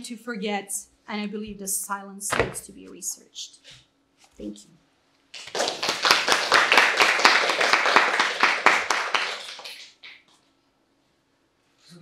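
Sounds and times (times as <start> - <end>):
audience applauding: 5.4 - 10.2.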